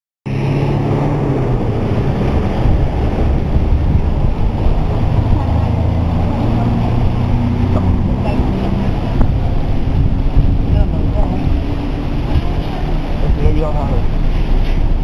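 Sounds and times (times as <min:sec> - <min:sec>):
bus diesel engine rumbling: 0:00.3 - 0:15.0.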